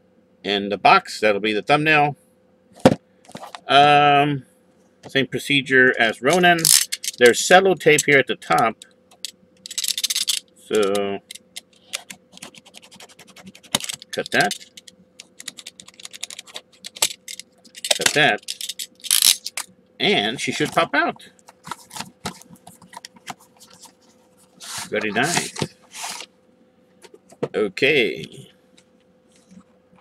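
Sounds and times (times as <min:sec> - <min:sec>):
packaging scraping rustle: 0:11.8 - 0:19.6, 0:21.5 - 0:26.3.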